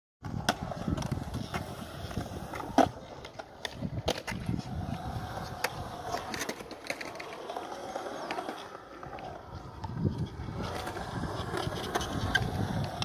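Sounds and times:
skateboard clacks: 0:00.2 - 0:13.0
skateboard wheels rolling on concrete: 0:00.2 - 0:13.0.

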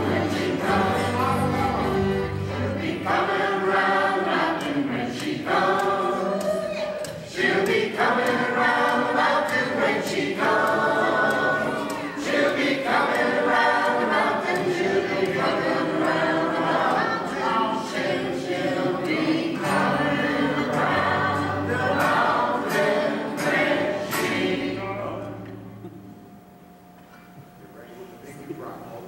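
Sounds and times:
string band playing: 0:00.0 - 0:06.4, 0:07.0 - 0:25.7
group singing in chorus: 0:00.0 - 0:25.9.

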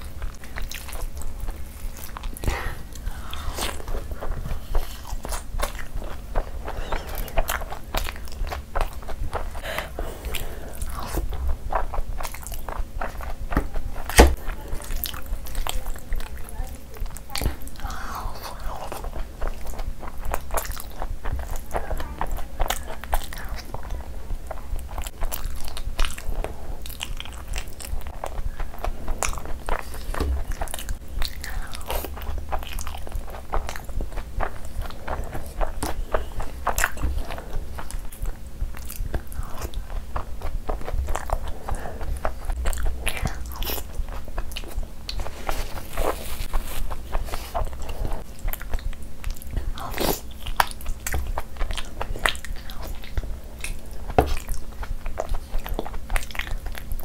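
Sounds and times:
fingers squishing gravy: 0:00.0 - 0:57.0
wet chewing: 0:00.0 - 0:57.0.

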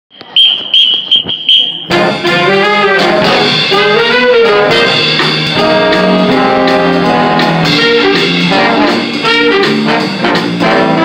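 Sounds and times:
high beeps: 0:00.1 - 0:02.0
jazz band horns and drums: 0:00.6 - 0:11.0.

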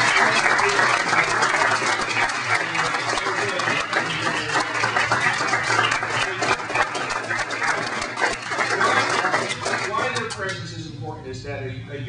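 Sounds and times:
audience applauding: 0:00.0 - 0:10.6.

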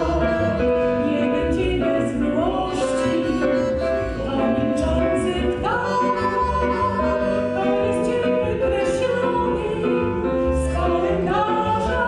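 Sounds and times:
accordion: 0:00.0 - 0:12.0
man and woman singing duet: 0:00.0 - 0:12.0.

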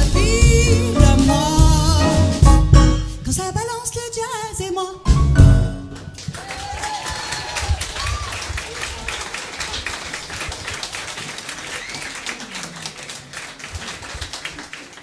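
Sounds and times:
audience clapping: 0:05.9 - 0:15.0.

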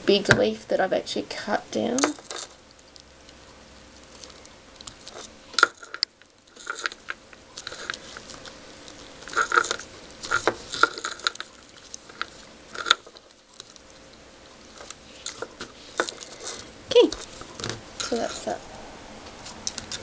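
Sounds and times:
paper crinkling and rustling: 0:04.0 - 0:18.6.

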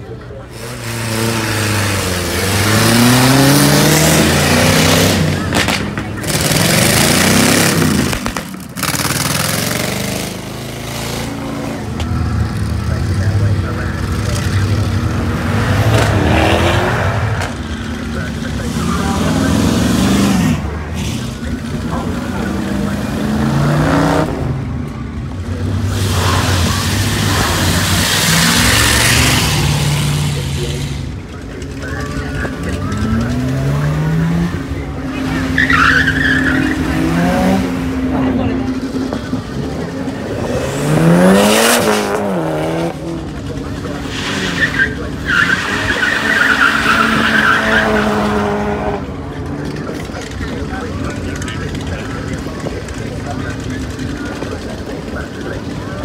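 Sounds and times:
car engines revving: 0:00.0 - 0:56.0
tyres squealing: 0:25.7 - 0:37.9, 0:39.0 - 0:51.8.

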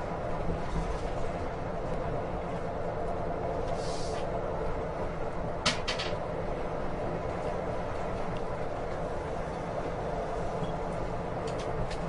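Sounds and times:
vehicle road and engine noise: 0:00.0 - 0:12.0.

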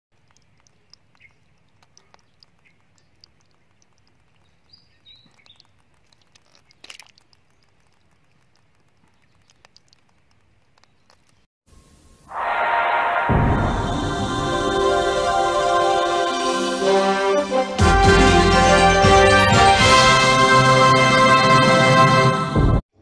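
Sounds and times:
soft ticks: 0:00.1 - 0:11.5
high bird chirps: 0:04.4 - 0:05.8
brief loud noise: 0:12.3 - 0:16.6.

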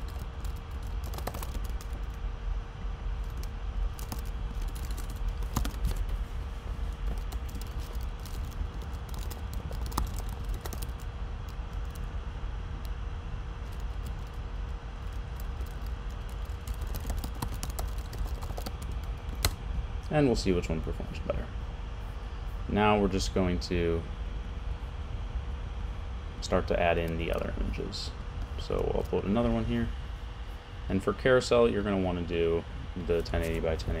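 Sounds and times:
computer keyboard typing: 0:00.0 - 0:02.2, 0:03.2 - 0:06.1, 0:07.0 - 0:12.0, 0:13.6 - 0:14.4, 0:15.0 - 0:19.5
faint steady hum: 0:00.0 - 0:34.0.

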